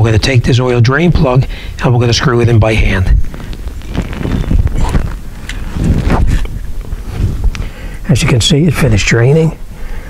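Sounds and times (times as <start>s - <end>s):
camera handling rumble: 3.0s - 7.7s.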